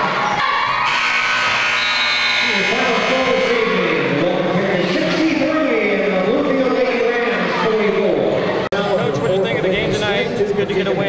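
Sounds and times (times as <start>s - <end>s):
crowd voices: 0.0s - 11.0s
scoreboard horn buzz: 0.8s - 3.8s.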